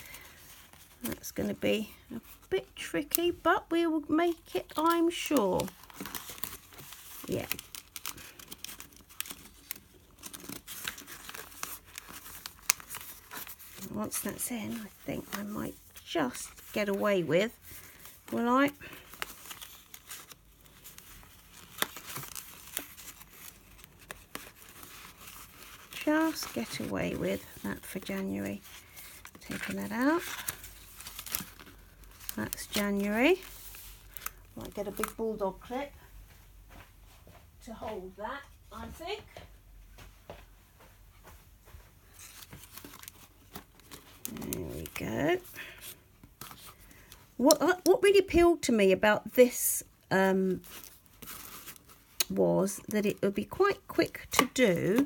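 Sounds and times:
paper pages rustling and crinkling: 0.0s - 36.1s, 41.2s - 48.7s, 49.4s - 55.0s
small clicks of pages: 4.7s - 13.9s.

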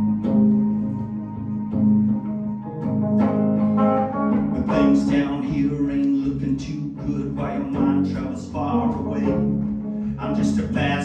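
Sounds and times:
low held tone: 0.0s - 10.9s
electric guitar playing: 0.0s - 11.0s.

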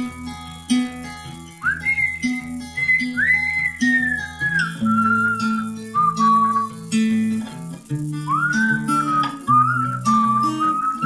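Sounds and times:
strummed acoustic guitar: 0.0s - 11.0s
whistled melody: 0.0s - 11.0s.

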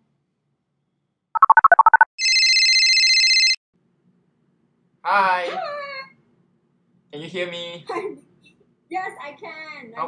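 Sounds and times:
electronic ringing tone: 1.4s - 3.6s.

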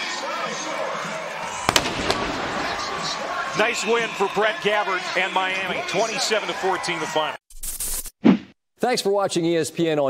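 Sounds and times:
crowd noise: 0.0s - 7.4s
fireworks bangs: 1.5s - 4.7s.

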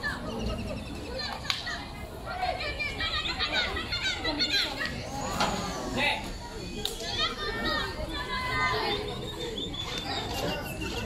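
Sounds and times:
girls calling and chattering: 0.0s - 11.0s.

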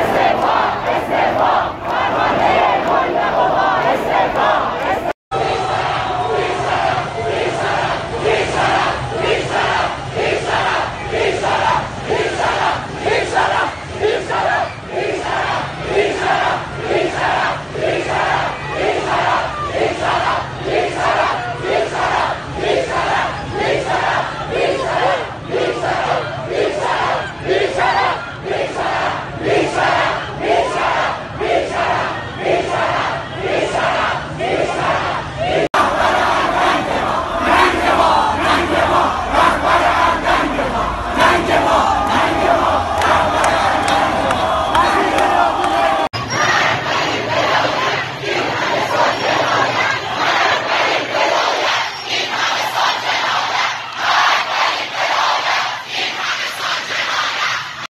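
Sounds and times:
crowd chanting in unison: 0.0s - 57.9s.

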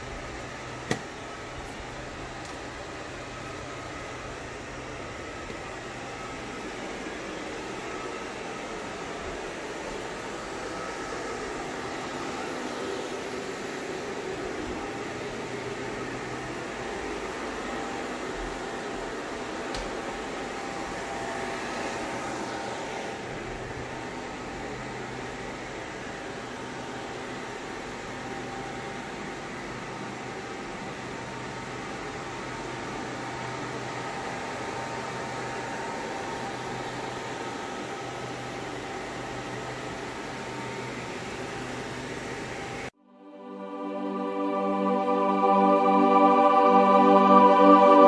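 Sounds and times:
fans whirring: 0.0s - 48.0s.

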